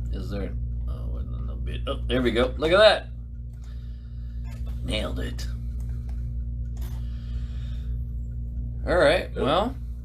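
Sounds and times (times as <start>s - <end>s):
low equipment hum: 0.0s - 10.0s
man speaking: 4.7s - 5.6s.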